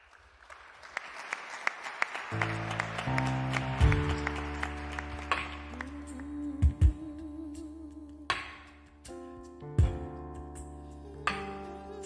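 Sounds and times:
keyboard playing slow chords: 2.4 - 12.0.

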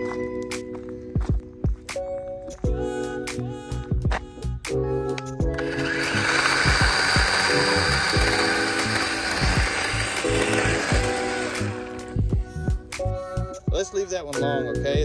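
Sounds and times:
music with steady beat: 0.0 - 15.0
electric chainsaw cutting branch: 5.4 - 12.3.

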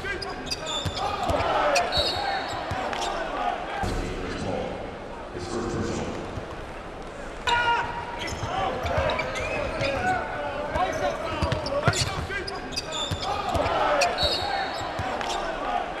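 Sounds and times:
sneakers squeaking: 0.0 - 3.3, 7.8 - 15.6
arena crowd din: 0.0 - 16.0.

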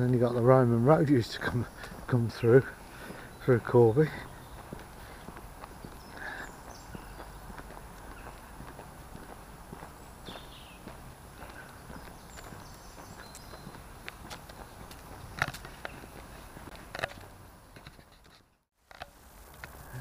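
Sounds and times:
footsteps on gritty path: 0.0 - 20.0.

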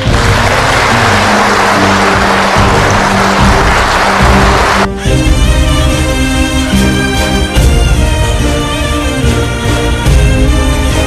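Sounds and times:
audience applauding: 0.0 - 6.7
music playing: 0.0 - 11.0.

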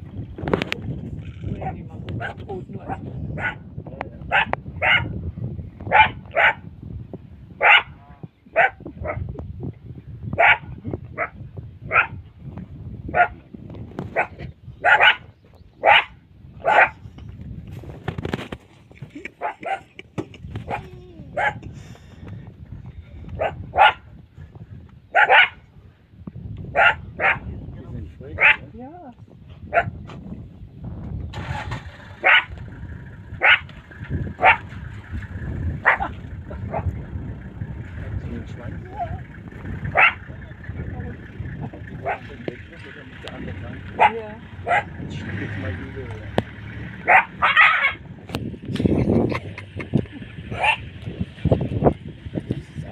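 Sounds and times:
cheetahs chirping: 32.0 - 48.6, 49.4 - 52.9.

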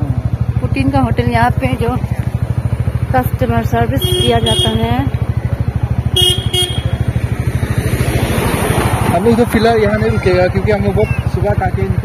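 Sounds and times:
vehicle engine running: 0.0 - 12.0
horn toots: 3.9 - 5.2, 6.0 - 7.2.

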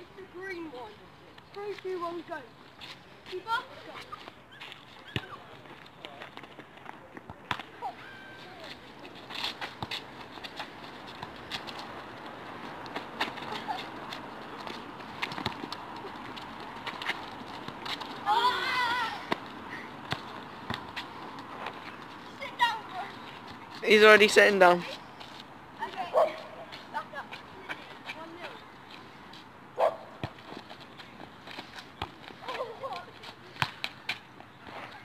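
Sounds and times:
person shouting: 18.2 - 19.3.

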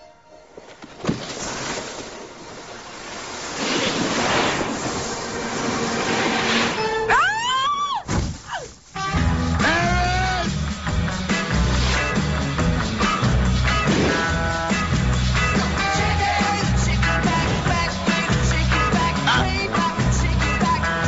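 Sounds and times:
snowboard sliding on snow: 0.6 - 7.0, 10.8 - 21.0
whooping cries: 7.0 - 8.7, 9.6 - 10.6
music with bass beat: 9.0 - 21.0.

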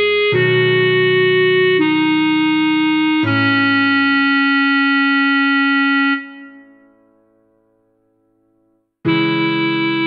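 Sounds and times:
keyboard backing track: 0.0 - 7.6, 9.0 - 10.0.

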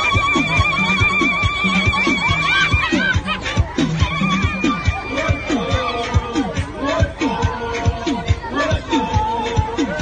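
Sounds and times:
women ululating: 0.0 - 6.0
steady drumbeat: 0.0 - 10.0.

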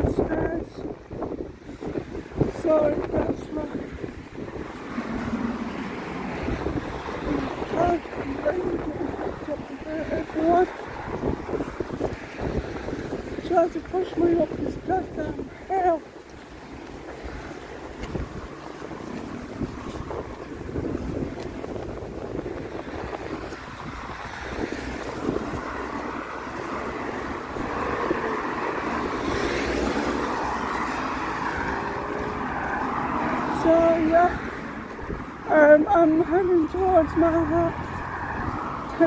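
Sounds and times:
road traffic passing: 0.0 - 39.0
wind on microphone: 0.0 - 39.0.

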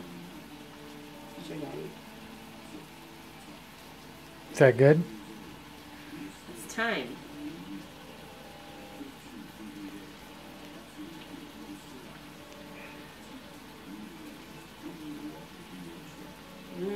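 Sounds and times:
faint low voices: 0.0 - 16.9
mushrooms sizzling in a pan: 0.0 - 16.9.

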